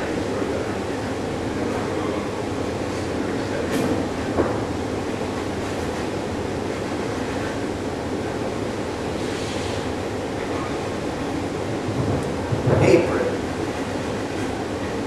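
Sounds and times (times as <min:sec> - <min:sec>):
rumbling room noise: 0:00.0 - 0:15.0.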